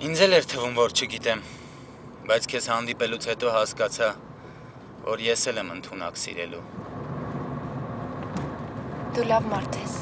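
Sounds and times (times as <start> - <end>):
car engine and road rumble: 0.0 - 10.0.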